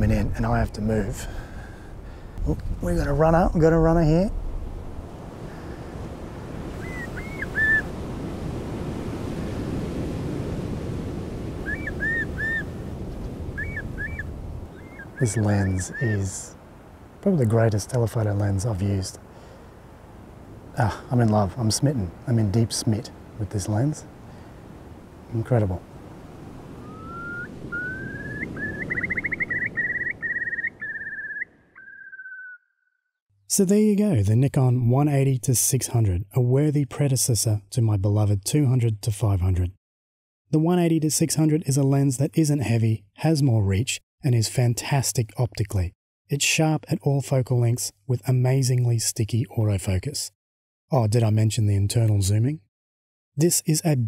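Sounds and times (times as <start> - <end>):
wind: 0.0 - 32.6, 33.4 - 39.8, 40.5 - 52.7, 53.4 - 54.0
shallow water washing: 2.9 - 30.3
shorebird whistled calls: 6.8 - 7.9, 11.6 - 12.8, 13.5 - 16.3, 26.7 - 32.9.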